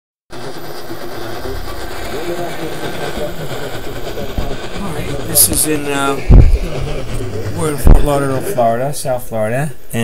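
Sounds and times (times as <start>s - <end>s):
faint wavering radio station audio: 0.3s - 10.0s
radio static hiss: 0.3s - 10.0s.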